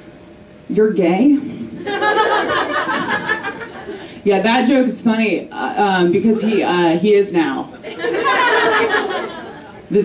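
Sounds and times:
audience laughing: 1.8 - 4.2, 7.7 - 9.9.

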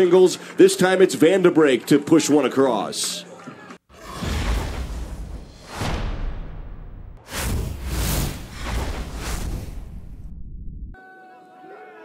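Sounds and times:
whooshes: 3.9 - 11.0
deep bass hits: 4.0 - 11.0.

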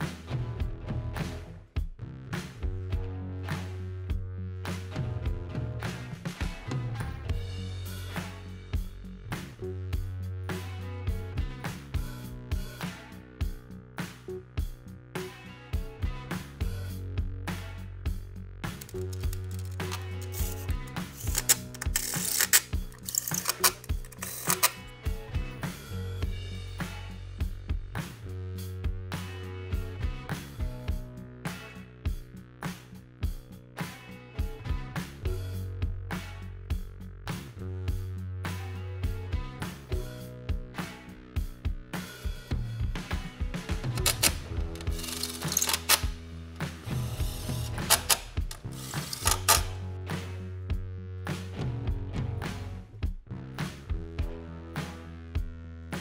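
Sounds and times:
background music: 0.0 - 55.2
hand ratchet clicking: 18.7 - 24.9, 44.0 - 49.8.

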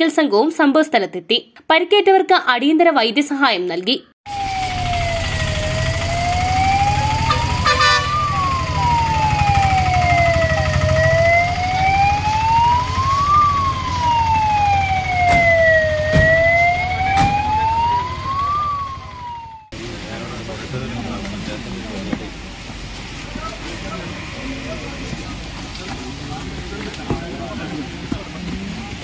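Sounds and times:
siren wailing: 4.3 - 19.8.

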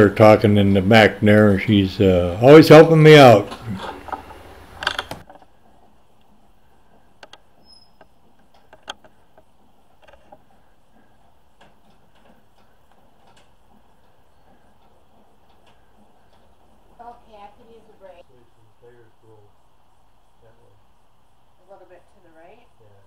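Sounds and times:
winch cable clicking and creaking: 3.4 - 18.0.

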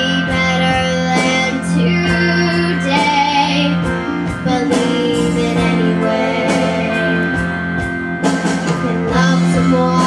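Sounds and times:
girl singing into microphone: 0.0 - 7.5, 8.6 - 10.0
backing music: 0.0 - 10.0.

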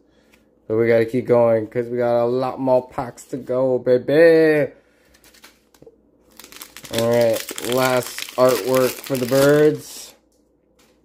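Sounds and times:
foil wrapper crinkling: 5.1 - 10.1.

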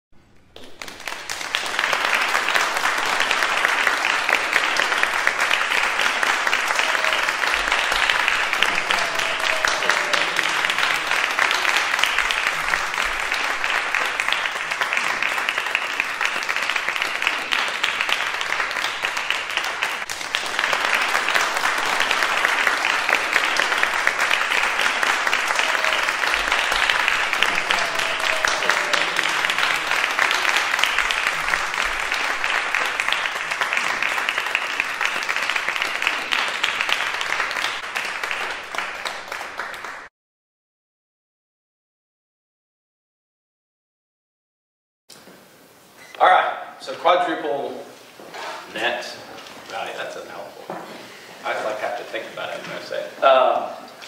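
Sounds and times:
audience applause: 0.6 - 40.1.

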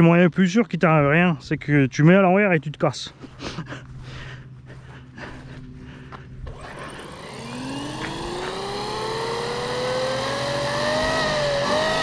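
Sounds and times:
electric motor whine: 6.3 - 12.0.

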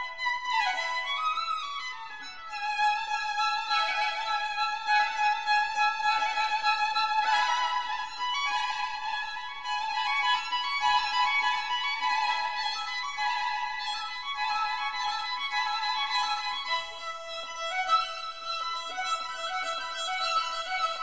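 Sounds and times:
violin playing long notes: 0.0 - 21.0.

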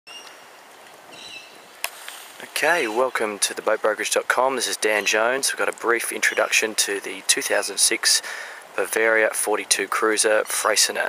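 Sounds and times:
outdoor background hiss: 0.1 - 11.0.

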